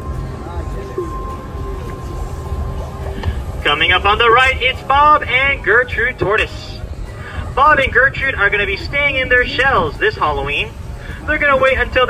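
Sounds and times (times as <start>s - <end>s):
boat low rumble: 0.0s - 12.0s
faint music from speaker: 0.0s - 12.0s.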